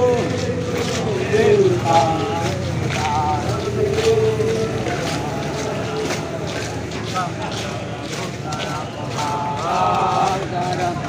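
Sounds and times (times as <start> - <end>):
soldiers singing marching chant: 0.0 - 11.0.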